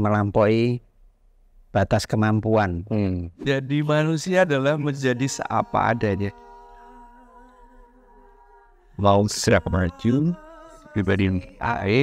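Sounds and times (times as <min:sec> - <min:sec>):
faint hum-like tone: 0:03.4 - 0:12.0.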